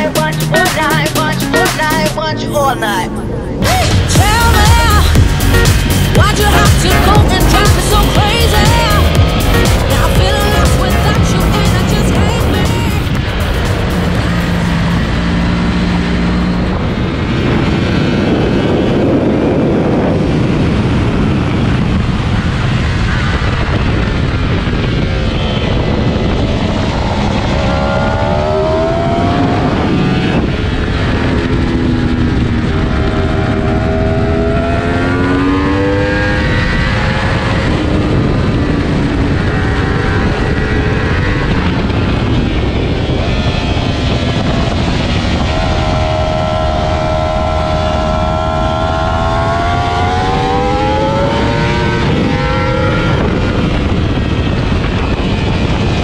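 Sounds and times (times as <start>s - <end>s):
motorcycle engine accelerating: 0.0s - 56.0s
wind noise on microphone: 3.2s - 56.0s.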